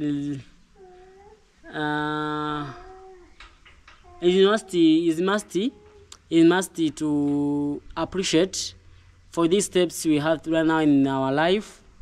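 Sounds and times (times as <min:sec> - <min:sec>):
man humming hesitantly: 0:00.0 - 0:03.3.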